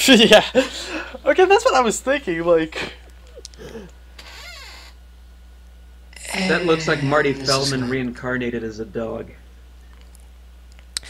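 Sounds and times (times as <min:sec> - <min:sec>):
low electrical hum: 0:00.0 - 0:11.0
faint voice with gliding pitch: 0:06.2 - 0:08.2.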